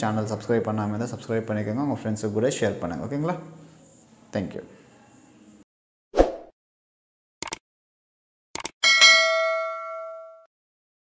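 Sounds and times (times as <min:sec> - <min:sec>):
bell ding: 0:08.8 - 0:10.5.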